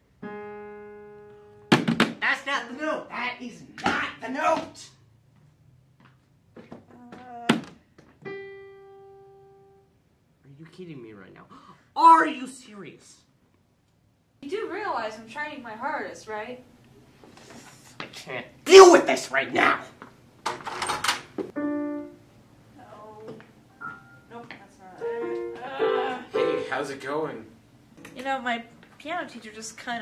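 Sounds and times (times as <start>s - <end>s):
piano notes: 0.0s - 1.8s, 8.2s - 9.9s, 21.5s - 27.1s, 28.0s - 28.9s
person speaking: 17.6s - 20.0s.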